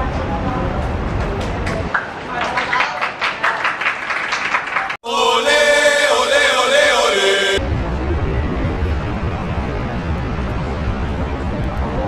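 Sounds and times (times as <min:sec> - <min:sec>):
jingle music with sung melody: 0:05.0 - 0:07.6.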